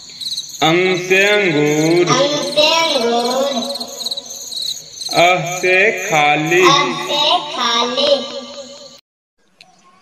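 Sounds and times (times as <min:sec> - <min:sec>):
high rapid chirping pulse: 0:00.4 - 0:09.0
children's song chanting: 0:00.6 - 0:04.4, 0:05.1 - 0:09.0.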